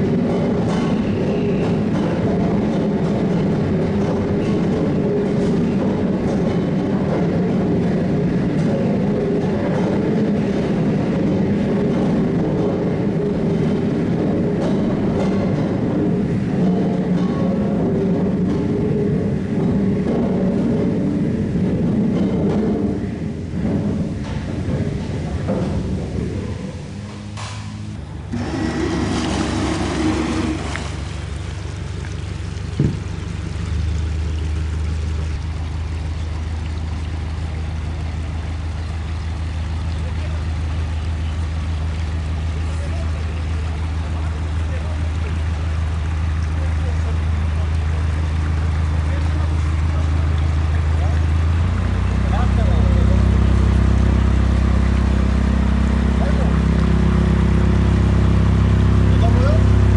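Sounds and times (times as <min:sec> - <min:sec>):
ship diesel engine humming: 0:00.0 - 0:59.9.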